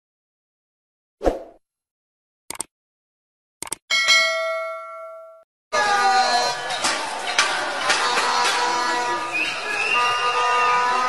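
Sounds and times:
quick clicks: 0:02.5 - 0:02.7, 0:03.6 - 0:03.8
bell-like notification ding: 0:03.9 - 0:05.4.

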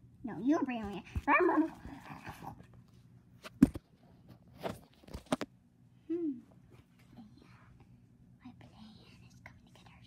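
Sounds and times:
faint whispering: 0:08.4 - 0:10.0.

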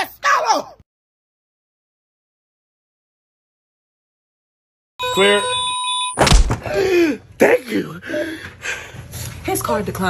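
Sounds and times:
electronic alarm ringing: 0:05.0 - 0:06.2.

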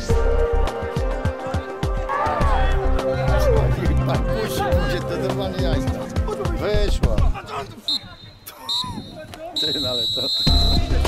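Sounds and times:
pea whistle blown: 0:07.9 - 0:11.0.

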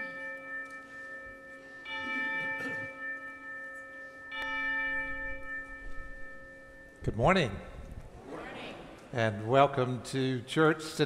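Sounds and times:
bell-like chime ringing: 0:00.0 - 0:07.9.

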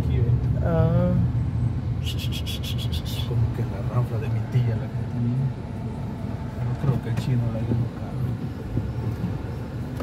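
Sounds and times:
car engine low rumble: 0:00.0 - 0:10.0.

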